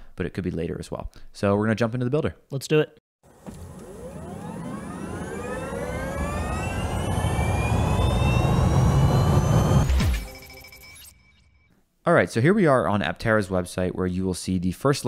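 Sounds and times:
rising whine: 3.3s - 11.4s
low rumble: 4.4s - 10.5s
ringing chime: 6.5s - 11.7s.

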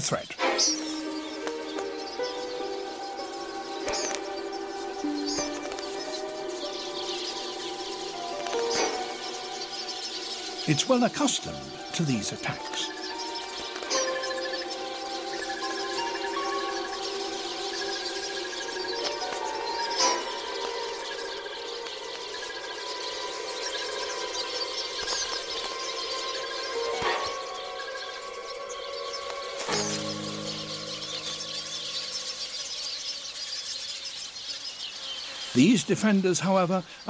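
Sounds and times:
birds chattering alarm calls: 0.0s - 37.0s
orchestral score with sharp hits: 0.4s - 31.6s.

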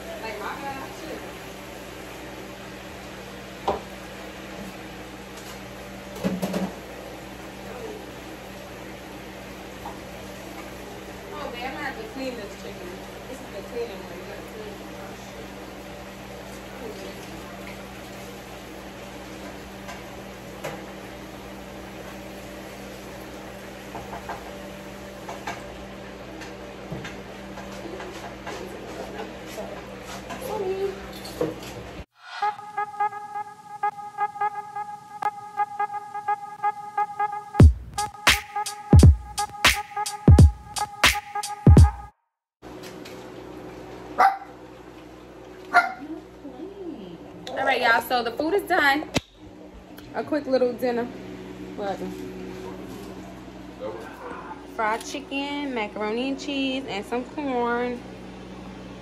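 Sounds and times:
low kitchen hum: 0.0s - 32.1s, 42.6s - 59.0s
dog barking: 44.2s - 44.6s, 45.7s - 46.0s.

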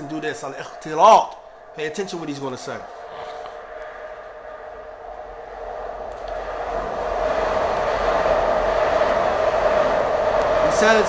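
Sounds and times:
mechanical drone with humming tone: 0.0s - 11.0s.

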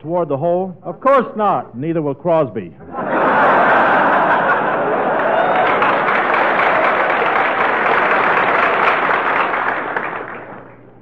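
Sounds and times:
audience laughing: 2.8s - 10.2s
audience applauding: 3.4s - 10.9s.

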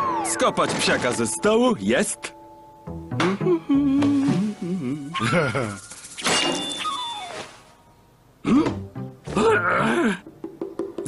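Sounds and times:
light background music: 0.0s - 6.0s, 6.8s - 11.0s
cartoon man groaning: 8.4s - 10.2s.

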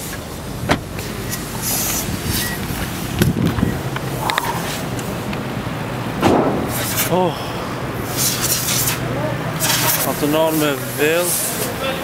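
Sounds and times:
outdoor noise: 0.0s - 12.0s
vehicle engine idling: 0.0s - 12.0s.

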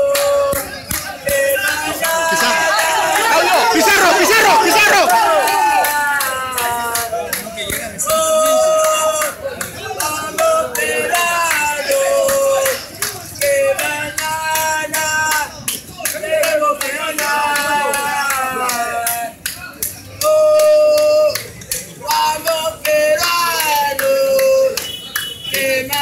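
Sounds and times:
hand clapping: 0.0s - 26.0s
men singing a terrace chant: 0.0s - 26.0s.

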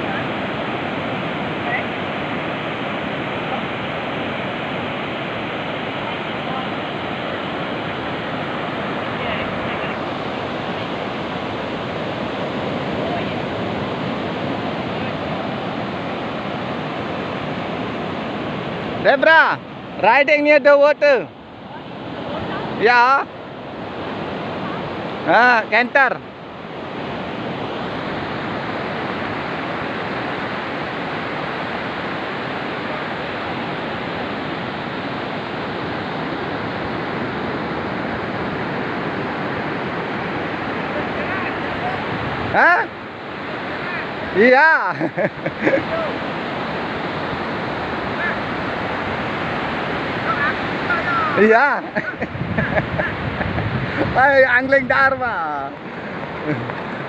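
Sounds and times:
ocean surf breaking: 0.0s - 57.0s
wind on microphone: 45.4s - 57.0s.

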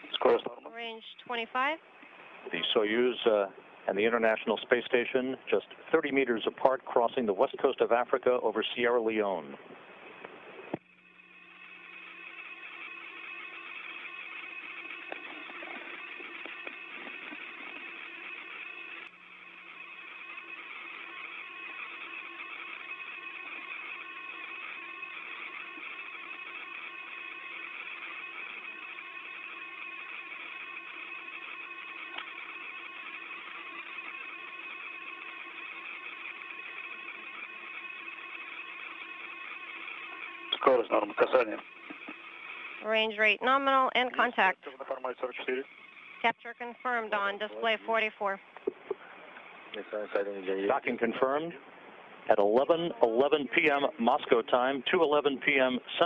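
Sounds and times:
loud radio burst: 0.0s - 1.8s, 11.6s - 51.6s, 52.2s - 56.0s
radio hiss with hum tones: 0.0s - 56.0s.

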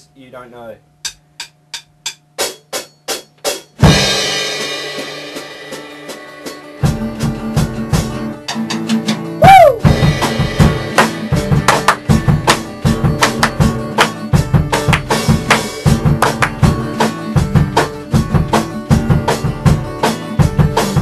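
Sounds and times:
rock band playing: 2.3s - 21.0s.

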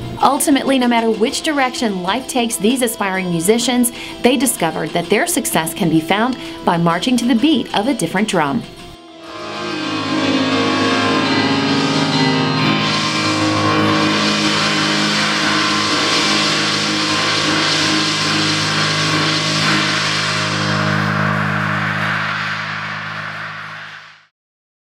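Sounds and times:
low keyboard chord: 9.0s - 22.5s
cymbal wash: 9.0s - 24.3s.

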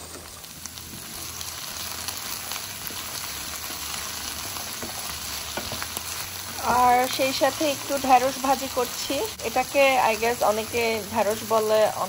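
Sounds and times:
vegetables sizzling in oil: 0.0s - 12.0s
wooden spatula stirring: 2.9s - 6.8s
woman speaking: 6.6s - 12.0s.

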